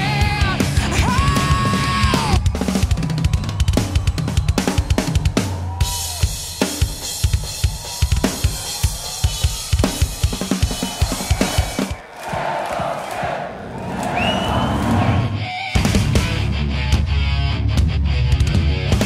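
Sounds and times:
drum kit playing: 0.0s - 12.0s
crowd cheering and screaming: 0.9s - 15.8s.

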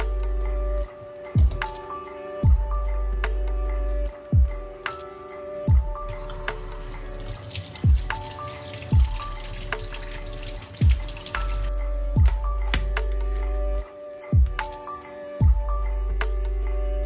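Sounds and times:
background music with deep beat: 0.0s - 17.0s
faucet water running: 6.0s - 11.8s.

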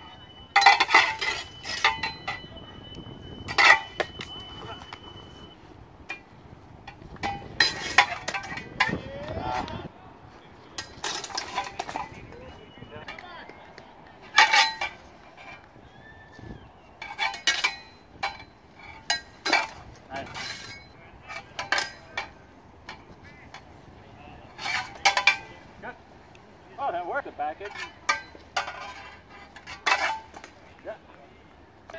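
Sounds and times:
sword blades clashing: 0.6s - 2.4s, 3.5s - 4.9s, 7.2s - 9.0s, 14.3s - 15.1s, 17.0s - 22.4s, 24.5s - 25.6s, 27.6s - 30.5s.

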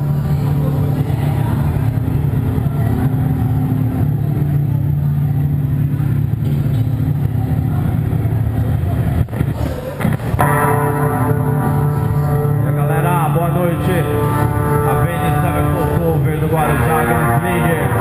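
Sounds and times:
heavy metal band playing live: 10.0s - 18.0s.

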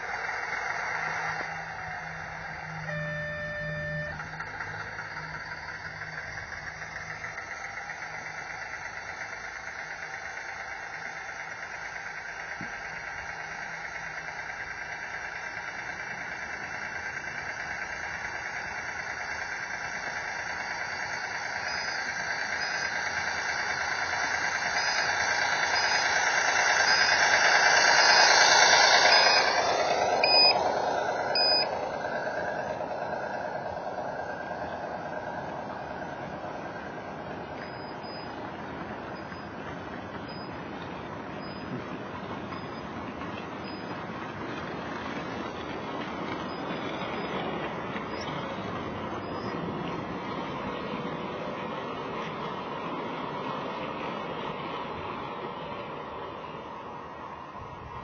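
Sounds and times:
model train running on track: 0.0s - 58.0s
short beeps: 2.7s - 4.5s, 26.8s - 29.5s, 30.2s - 30.6s, 31.3s - 31.7s, 40.2s - 40.6s.

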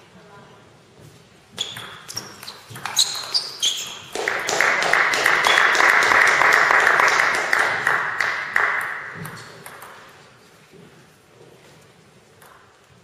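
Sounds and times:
spectators clapping: 4.1s - 9.5s.

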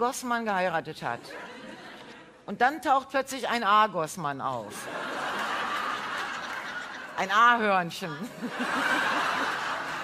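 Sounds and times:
studio audience laughing: 1.2s - 2.4s, 4.8s - 7.2s, 8.2s - 10.0s.

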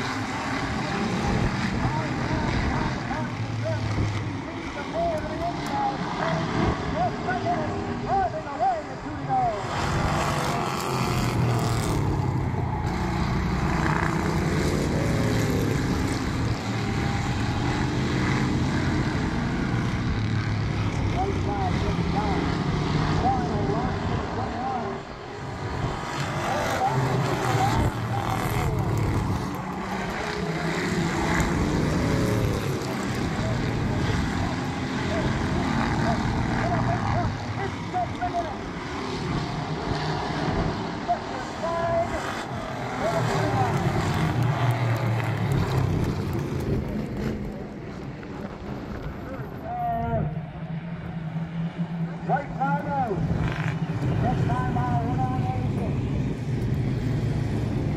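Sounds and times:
race car engines droning: 0.0s - 57.9s.

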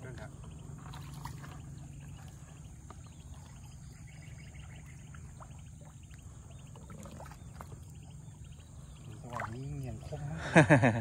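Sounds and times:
insect chirps: 0.0s - 10.9s
steady low rumble: 0.0s - 11.0s
water splashing and dripping: 4.6s - 8.3s, 9.0s - 10.2s.

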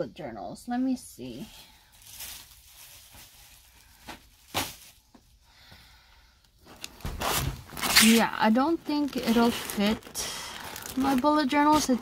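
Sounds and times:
plastic cover rustling: 1.2s - 5.4s, 6.6s - 12.0s
sharp plastic crackle: 1.8s - 5.2s, 6.6s - 12.0s.

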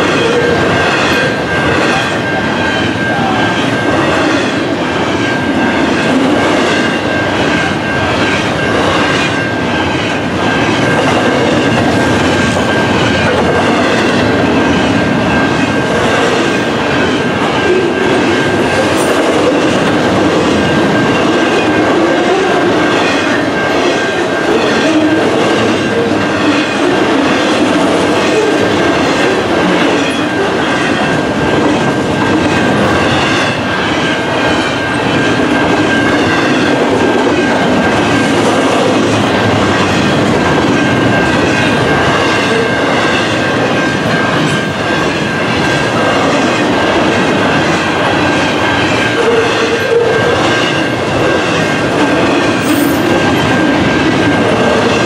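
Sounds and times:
clickety-clack over rail joints: 0.0s - 55.0s
crossing signal ringing: 0.0s - 55.0s
train wheels rumbling on rails: 0.0s - 55.0s.

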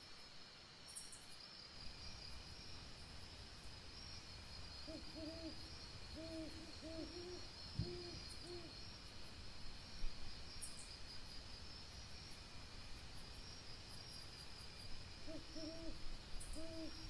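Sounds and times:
night insects chirring: 0.0s - 17.0s
low hooting calls: 4.9s - 8.7s.

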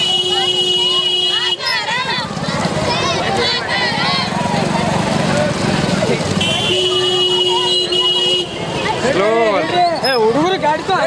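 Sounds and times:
vehicle horn: 0.0s - 1.8s, 6.4s - 8.7s
crowd of marchers' voices: 0.0s - 11.0s
loud voices shouting: 0.0s - 11.0s.

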